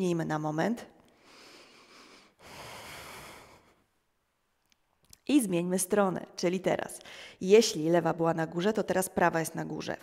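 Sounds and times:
woman breathing through nose: 0:01.1 - 0:03.8, 0:07.0 - 0:07.4.

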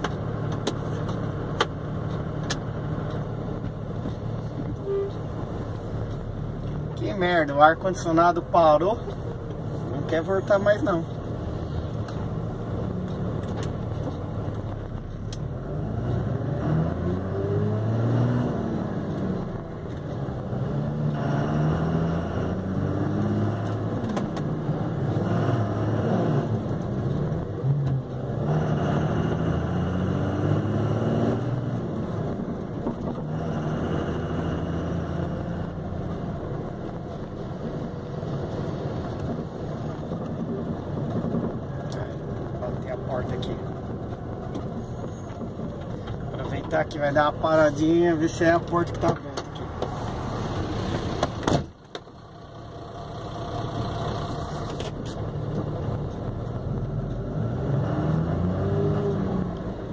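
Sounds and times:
car engine from inside cabin: 0:00.0 - 0:59.9
road noise: 0:00.0 - 0:59.9.

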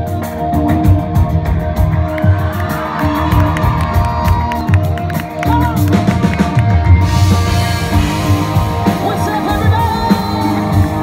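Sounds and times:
bass guitar: 0:00.0 - 0:11.0
drums: 0:00.0 - 0:11.0
electric guitars: 0:00.0 - 0:11.0
crowd cheering and whooping: 0:01.9 - 0:06.8.

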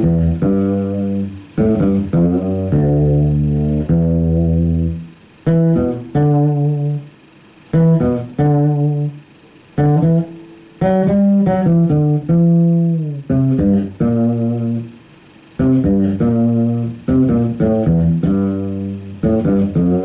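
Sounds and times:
electric bass melody: 0:00.0 - 0:20.0.

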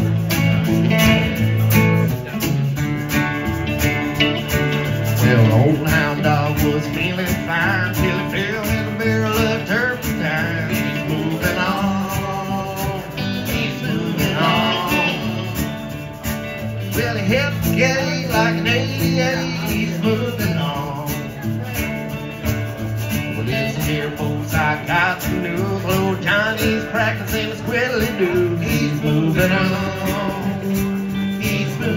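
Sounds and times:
electric guitar: 0:00.0 - 0:31.9
resonator guitar: 0:00.0 - 0:31.9.

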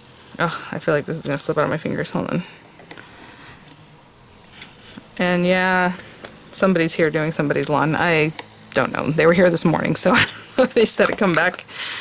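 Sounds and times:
lawn-care machinery running: 0:00.0 - 0:12.0.

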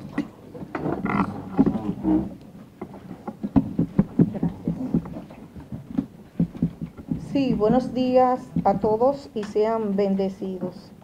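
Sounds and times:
microphone handling knocks and thumps: 0:00.6 - 0:09.2.

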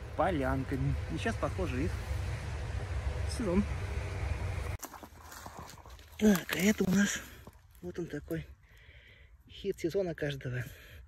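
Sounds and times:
footsteps on leaf litter: 0:04.7 - 0:08.4.

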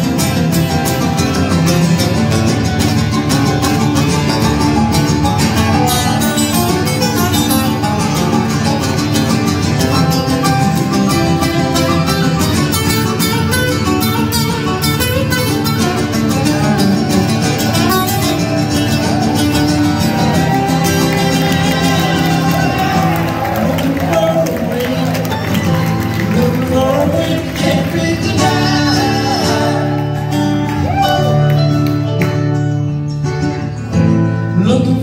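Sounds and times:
amplified acoustic guitars: 0:00.0 - 0:35.0.

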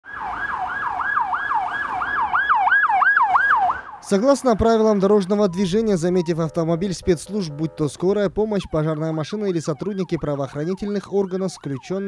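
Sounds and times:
emergency siren yelping: 0:00.0 - 0:12.0.

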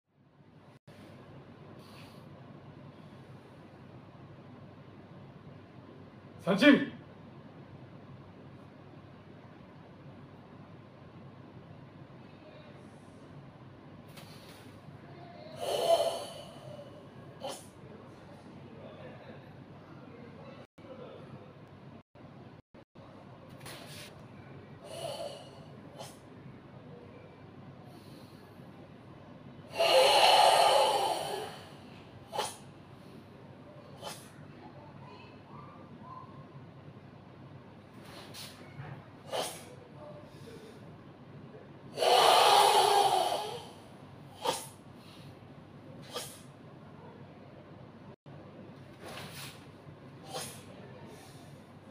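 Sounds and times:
forceful breath: 0:15.6 - 0:17.6, 0:24.8 - 0:26.2, 0:29.7 - 0:33.3, 0:42.0 - 0:43.8.

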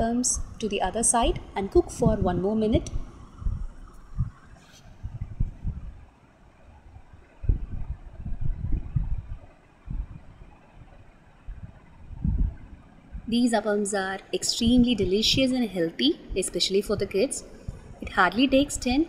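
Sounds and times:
low thumps and rumbles: 0:00.4 - 0:06.0, 0:07.4 - 0:10.4, 0:11.5 - 0:13.4.

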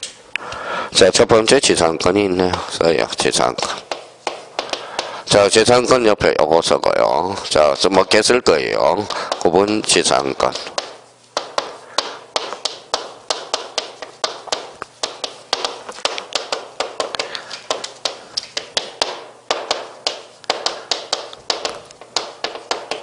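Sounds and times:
chalk tapping on blackboard: 0:03.2 - 0:05.6, 0:08.0 - 0:23.0.

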